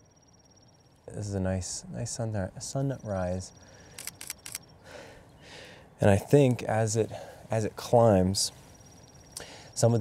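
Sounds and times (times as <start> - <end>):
soft breaths: 3.5 - 6.0, 7.0 - 9.8
sharp clicks: 3.9 - 4.7.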